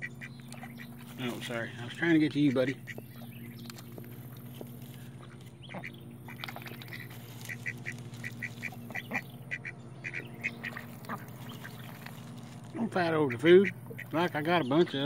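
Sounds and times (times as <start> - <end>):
ducks quacking: 0.0 - 15.0
steady low hum: 0.0 - 15.0.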